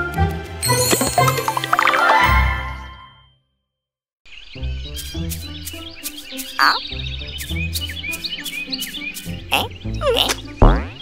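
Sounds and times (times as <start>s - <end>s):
bouncy cartoon music: 0.6s - 3.0s, 4.9s - 8.6s, 9.2s - 11.0s
chirpy sliding sound effects: 6.1s - 6.8s.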